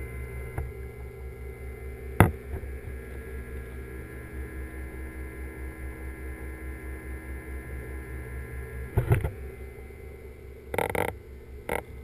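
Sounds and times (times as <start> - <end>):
aquarium pump hum underwater: 0.0 - 12.0.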